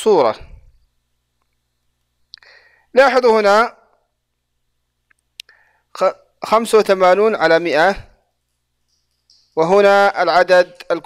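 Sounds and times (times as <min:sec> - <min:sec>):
man breathing in: 0:02.4 - 0:02.9, 0:05.5 - 0:05.9
man speaking: 0:03.0 - 0:03.8, 0:06.0 - 0:08.2, 0:09.5 - 0:11.0
mouth click: 0:05.0 - 0:05.6.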